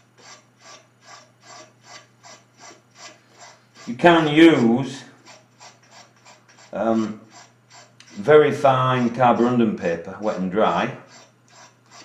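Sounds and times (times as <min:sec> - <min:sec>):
hand rubbing heater burner: 0:00.0 - 0:12.0
steady low hum: 0:00.0 - 0:12.0.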